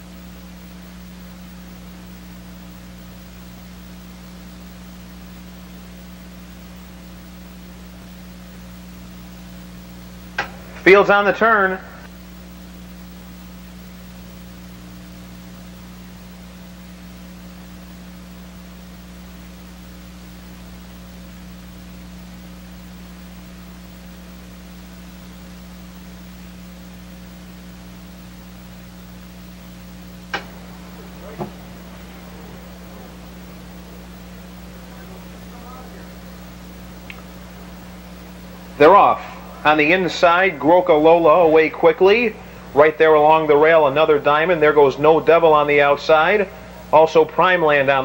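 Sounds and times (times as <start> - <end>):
low electrical hum: 0.0 - 48.0
steady hiss: 0.0 - 48.0.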